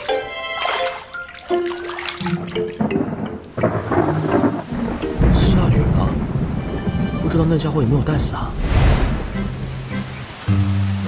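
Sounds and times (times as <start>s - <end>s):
soft background music: 0.0s - 8.3s, 9.2s - 11.0s
rain: 0.7s - 11.0s
thunder rumble: 2.8s - 10.0s.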